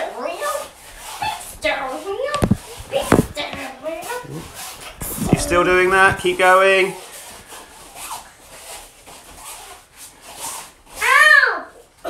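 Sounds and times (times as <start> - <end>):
phone rubbing against clothing: 0.0 - 11.2.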